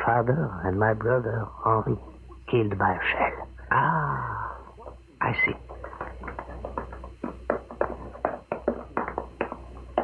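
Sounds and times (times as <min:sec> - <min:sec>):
rapid taps and knocks: 0:04.8 - 0:10.0.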